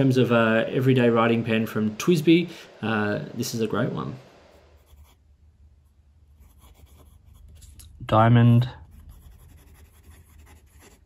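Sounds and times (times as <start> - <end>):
fountain pen scratching on paper: 6.4 - 7.7, 8.8 - 11.0.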